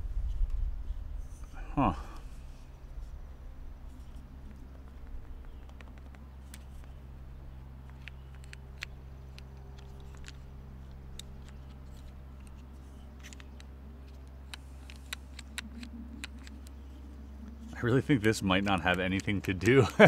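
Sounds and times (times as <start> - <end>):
low background hum: 0.0 - 20.0
wooden puzzle clicks and taps: 4.5 - 7.0, 7.8 - 16.8, 18.3 - 20.0.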